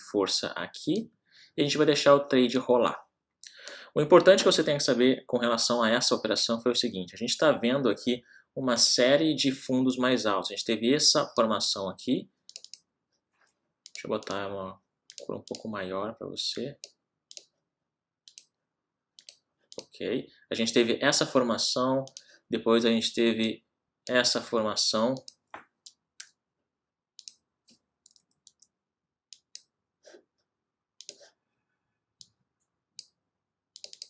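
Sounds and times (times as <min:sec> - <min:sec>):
computer mouse clicks: 0:12.5 - 0:12.9, 0:15.1 - 0:15.7, 0:16.8 - 0:17.5, 0:18.3 - 0:18.6, 0:19.2 - 0:19.9, 0:22.0 - 0:22.3, 0:25.2 - 0:26.4, 0:27.2 - 0:28.7, 0:29.3 - 0:29.7, 0:31.0 - 0:31.3, 0:33.8 - 0:34.0.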